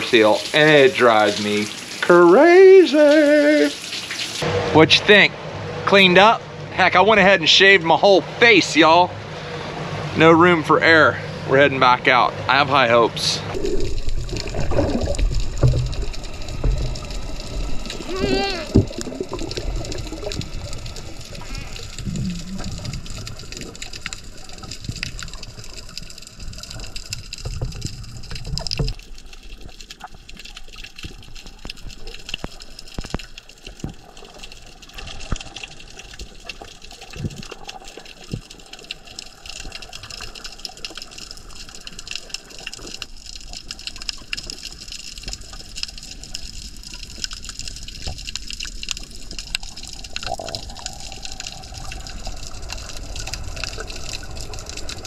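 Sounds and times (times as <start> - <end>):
underwater watery rush: 0.0 - 55.0
low swishing of water: 13.4 - 55.0
small crackling clicks: 18.8 - 55.0.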